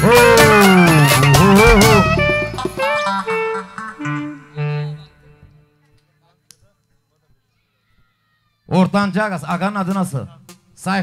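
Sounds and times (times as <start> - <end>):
live band held notes: 0.0 - 5.5.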